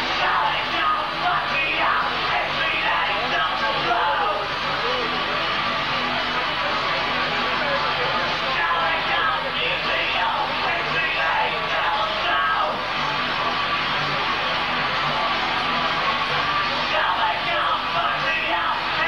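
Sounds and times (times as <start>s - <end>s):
shouted lead vocal: 0.0s - 5.3s, 8.4s - 12.8s, 16.7s - 19.0s
drums: 0.0s - 19.0s
electric guitar: 0.0s - 19.0s.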